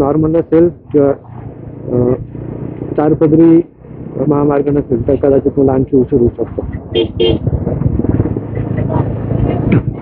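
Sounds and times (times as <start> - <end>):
motorcycle engine running: 0.0 - 10.0
wind noise: 3.8 - 10.0.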